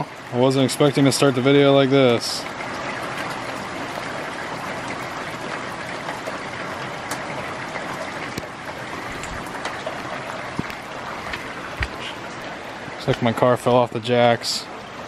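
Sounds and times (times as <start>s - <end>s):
heavy rain pouring: 0.0s - 15.0s
raindrops tapping nearby: 0.0s - 15.0s.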